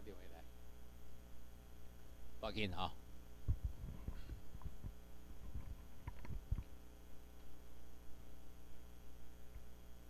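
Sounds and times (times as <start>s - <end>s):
steady electrical hum: 0.0s - 10.0s
microphone handling thumps: 3.4s - 6.7s.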